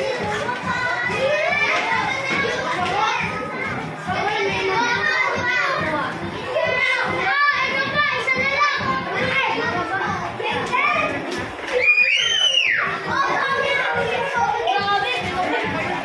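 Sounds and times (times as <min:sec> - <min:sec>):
young children calling out and chattering: 0:00.0 - 0:16.0.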